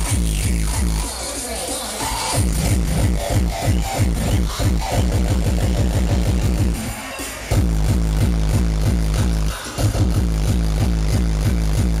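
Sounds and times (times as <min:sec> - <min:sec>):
hardcore techno distorted kicks: 0:00.0 - 0:12.0.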